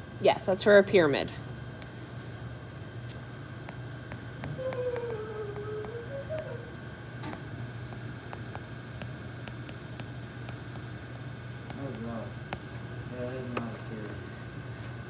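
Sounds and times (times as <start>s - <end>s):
low hum: 3.2s - 7.9s
wavering pitched sound: 4.4s - 6.8s.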